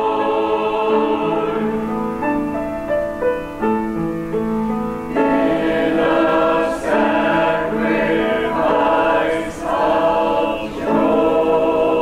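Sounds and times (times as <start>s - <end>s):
choir singing in harmony: 0.0s - 2.8s, 5.0s - 12.0s.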